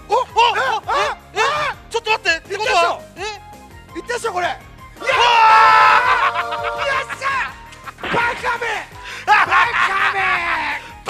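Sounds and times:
background music: 0:00.0 - 0:11.0
man shouting excitedly: 0:00.0 - 0:11.0
man screaming with joy: 0:00.1 - 0:01.8, 0:05.0 - 0:07.6, 0:09.3 - 0:10.8.

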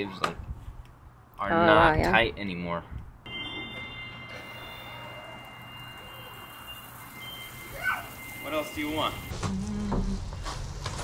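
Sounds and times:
faint steady high tones: 0:03.2 - 0:09.3
falling water hissing: 0:05.8 - 0:09.3.

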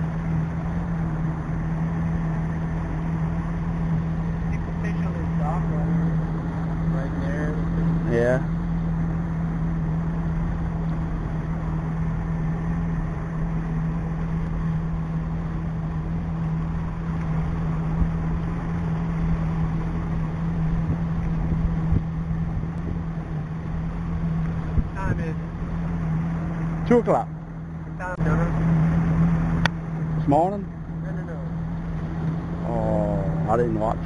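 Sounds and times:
boat motor humming: 0:00.0 - 0:34.0
water rushing: 0:00.0 - 0:34.0
wind: 0:00.0 - 0:34.0.

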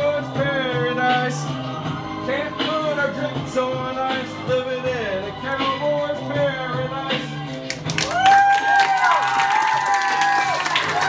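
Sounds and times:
recorded backing music: 0:00.0 - 0:11.0
students clapping and cheering: 0:07.5 - 0:11.0.

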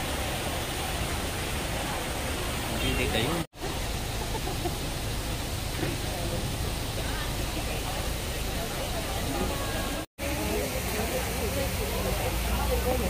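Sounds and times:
outdoor background noise: 0:00.0 - 0:13.0
faint crowd voices: 0:05.7 - 0:13.0.

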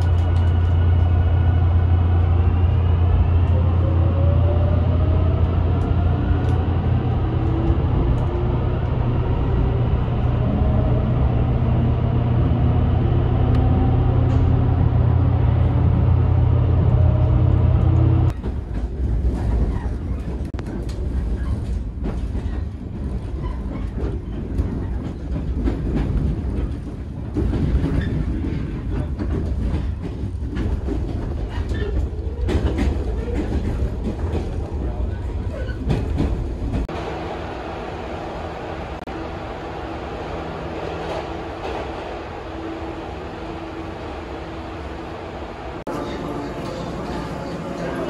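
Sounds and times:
train rumbling on rails: 0:00.0 - 0:48.0.

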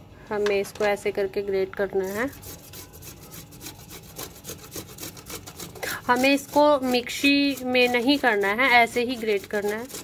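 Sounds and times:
tomato grated on metal grater: 0:01.8 - 0:10.0.

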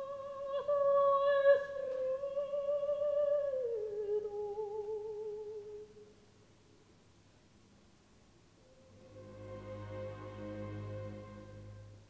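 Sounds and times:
operatic soprano singing: 0:00.0 - 0:06.0.

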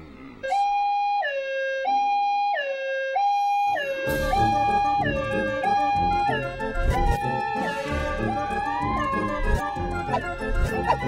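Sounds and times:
two-tone hi-lo siren: 0:00.4 - 0:11.0.

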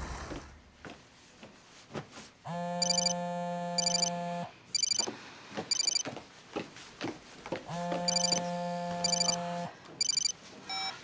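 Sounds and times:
short high chiming pulses: 0:02.8 - 0:03.1, 0:03.8 - 0:04.1
electronic buzzing ringtone: 0:02.8 - 0:04.2, 0:04.8 - 0:05.1, 0:05.7 - 0:06.0, 0:08.0 - 0:10.9.

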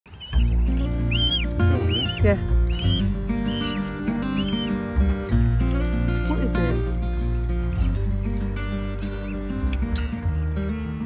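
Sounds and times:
cygnet peeping: 0:00.1 - 0:04.8
background music with bass: 0:00.3 - 0:11.0.

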